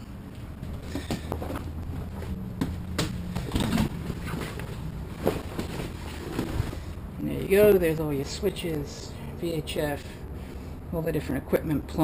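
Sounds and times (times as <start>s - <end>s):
steady low hum: 0.0s - 12.0s
fabric rustling: 0.8s - 7.0s.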